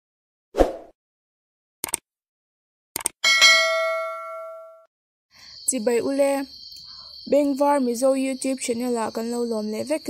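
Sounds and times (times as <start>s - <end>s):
bright bell ding: 3.2s - 4.9s.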